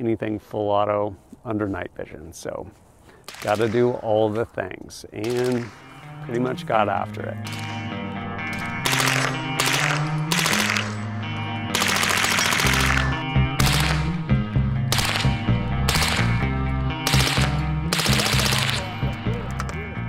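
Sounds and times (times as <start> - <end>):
suppressed automatic gunfire bursts: 5.2 - 6.0, 8.5 - 11.1, 11.7 - 14.1, 14.9 - 16.4, 17.0 - 18.9
background music with bass line: 5.4 - 20.0.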